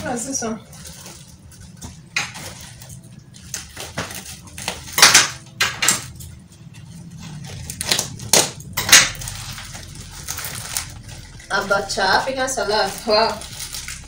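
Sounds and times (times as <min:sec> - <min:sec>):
plastic bag crinkling: 0:00.0 - 0:05.2, 0:06.8 - 0:14.0.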